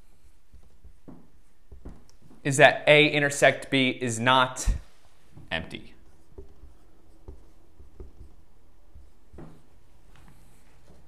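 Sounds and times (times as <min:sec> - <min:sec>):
marker writing on whiteboard: 0:00.0 - 0:02.6, 0:04.7 - 0:11.0.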